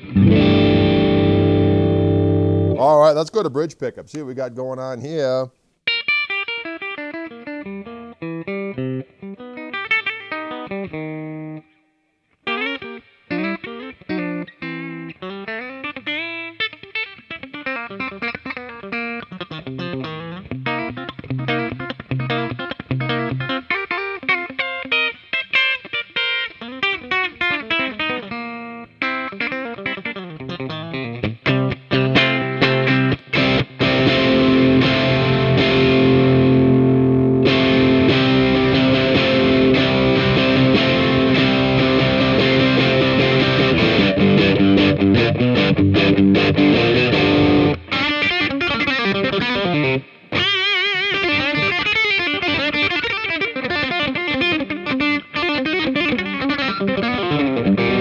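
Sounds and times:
electric guitar through an amp: 0.0 - 3.0, 5.9 - 58.0.

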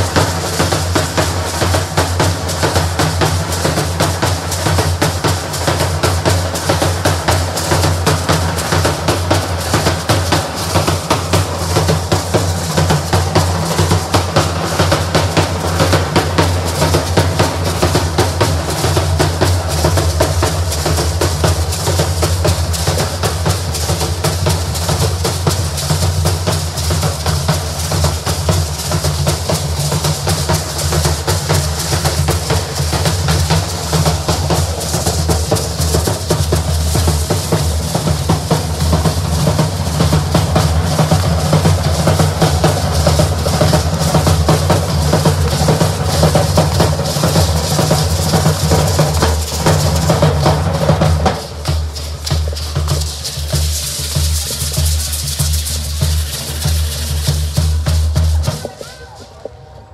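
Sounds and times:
bass drums beating: 0.0 - 58.8.

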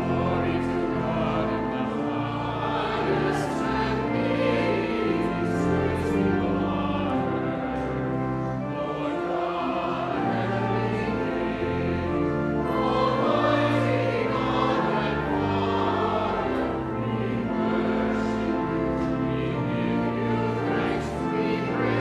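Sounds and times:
choir and congregation singing hymn: 0.0 - 22.0
pipe organ bass notes: 0.0 - 22.0.

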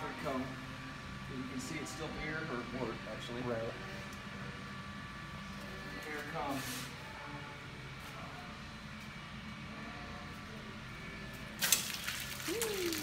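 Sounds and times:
steady low hum: 0.0 - 13.0
water splashing onto floor: 11.6 - 13.0.

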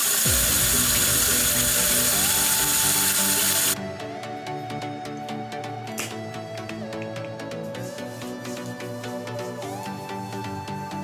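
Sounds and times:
shower water spray hiss: 0.0 - 3.8
background music: 0.0 - 11.0.

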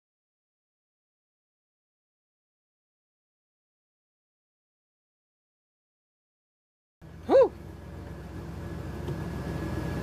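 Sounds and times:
truck engine idling: 7.0 - 10.0.

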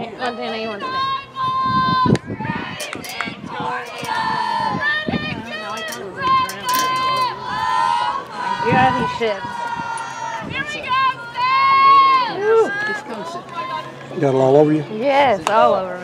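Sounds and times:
young female voices yelling a cheer: 0.2 - 13.9.

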